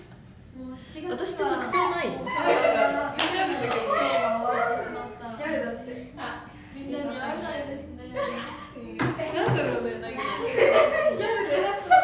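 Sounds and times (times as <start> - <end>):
young woman talking: 0.6 - 10.5
hand claps: 3.2 - 4.0.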